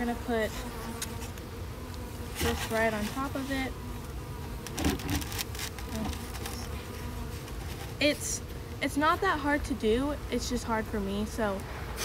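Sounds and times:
bees buzzing: 0:00.0 - 0:12.0
board knocks and scrapes: 0:04.7 - 0:06.1.

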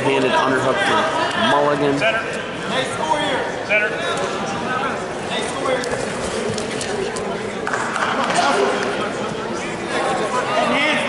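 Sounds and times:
echoing crowd chatter: 0:00.0 - 0:11.0.

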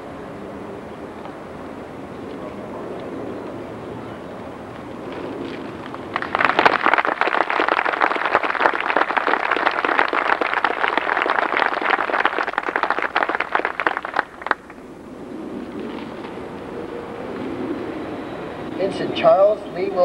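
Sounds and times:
audience applauding: 0:05.9 - 0:14.8.

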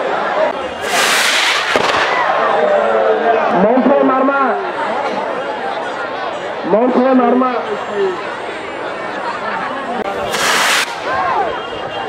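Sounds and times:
crowd shouting and talking: 0:00.0 - 0:12.0
firework crack: 0:00.7 - 0:02.6, 0:10.2 - 0:11.4
firework rocket hissing rush: 0:00.8 - 0:02.2, 0:10.2 - 0:11.1.

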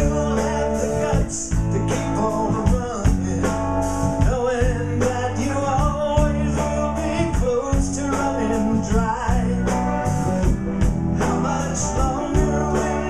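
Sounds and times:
blues-rock band playing: 0:00.0 - 0:13.0
man singing: 0:00.0 - 0:13.0.

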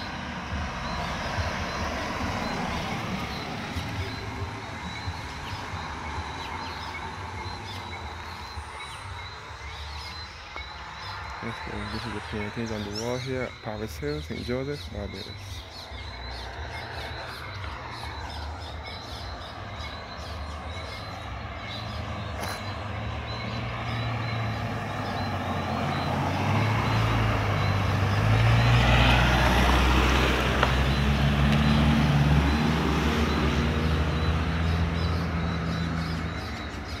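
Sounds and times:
cars driving past: 0:00.0 - 0:37.0
high chirping: 0:00.0 - 0:37.0.

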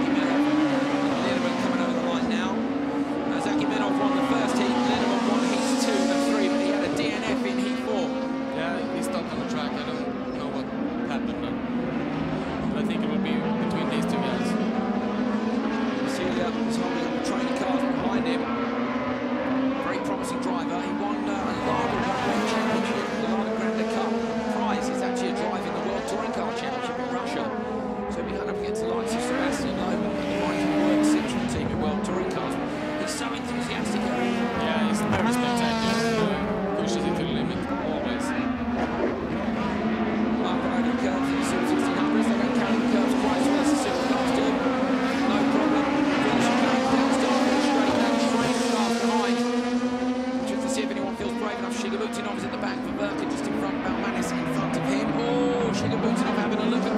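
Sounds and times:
racing car engines: 0:00.0 - 0:56.9.

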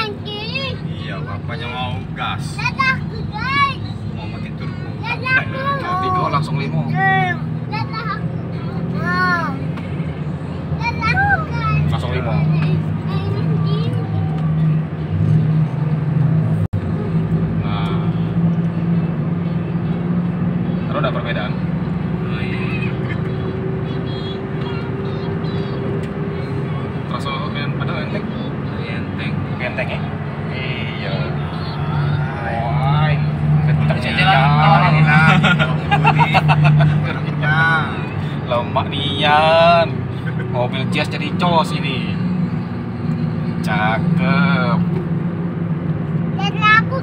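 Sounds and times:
voices: 0:00.0 - 0:45.2, 0:46.2 - 0:47.0
car engine drone in cabin: 0:00.0 - 0:47.0
road noise: 0:00.0 - 0:47.0.

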